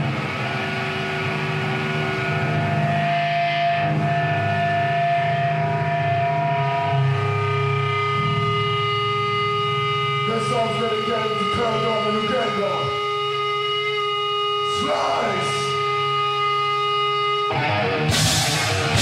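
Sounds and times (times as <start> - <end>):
distorted electric guitars: 0.0 - 19.0.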